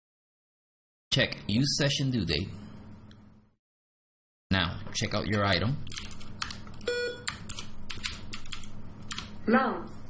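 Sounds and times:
computer keyboard keystrokes: 0:05.9 - 0:09.4.

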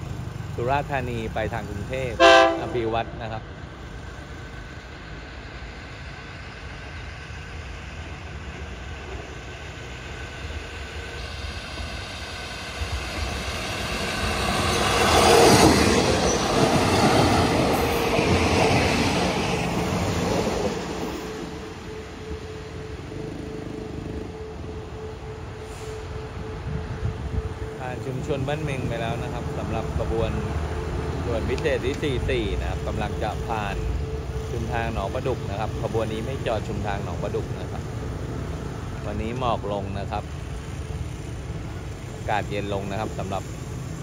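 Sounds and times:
train passing on rails: 0:00.0 - 0:44.0.

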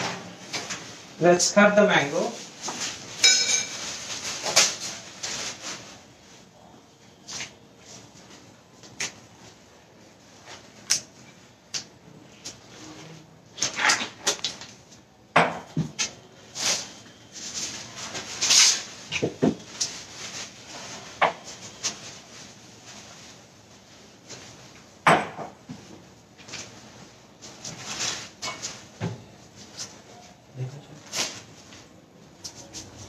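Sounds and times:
kitchen utensils clattering: 0:03.2 - 0:04.6.

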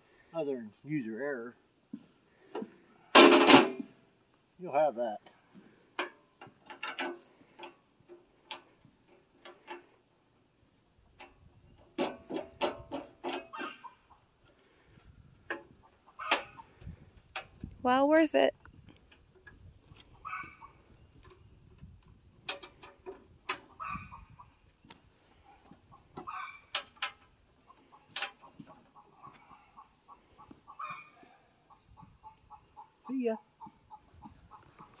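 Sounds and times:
sharp metallic clicks and knocks: 0:06.0 - 0:09.9, 0:11.2 - 0:13.7, 0:22.4 - 0:23.7, 0:26.2 - 0:27.3, 0:28.1 - 0:28.8
short pitched calls: 0:30.7 - 0:33.4.

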